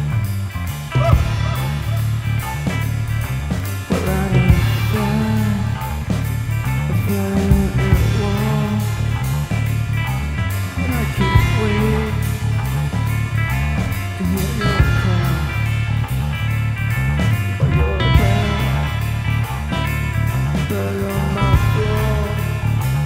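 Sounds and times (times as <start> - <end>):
stoner rock instrumental: 0.0 - 23.0.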